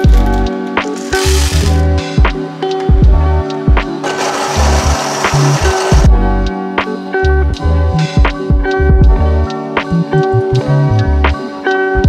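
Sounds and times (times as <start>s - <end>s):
coffee grinder grinding: 0.0s - 1.9s, 4.0s - 6.1s
background music with bass: 0.0s - 12.0s.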